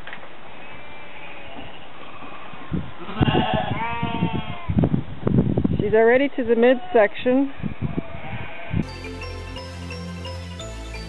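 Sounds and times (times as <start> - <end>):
sheep bleating: 0.5 - 4.8.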